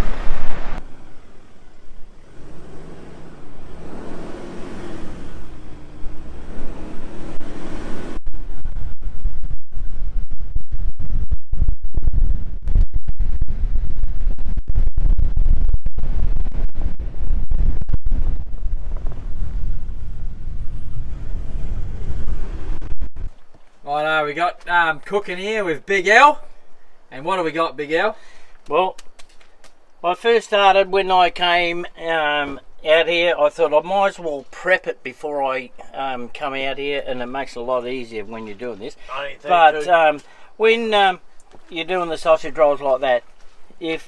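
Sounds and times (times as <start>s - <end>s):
wind buffeting microphone: 8.1s - 23.5s.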